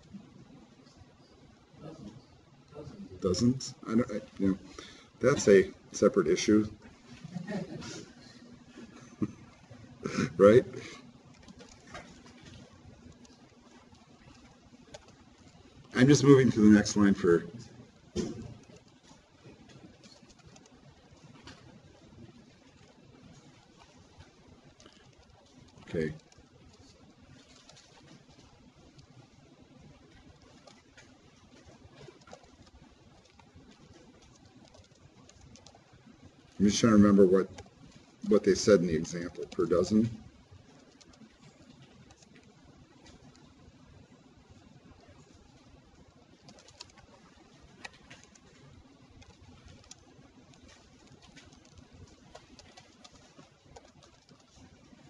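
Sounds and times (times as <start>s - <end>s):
low room noise: 0.0s - 55.0s.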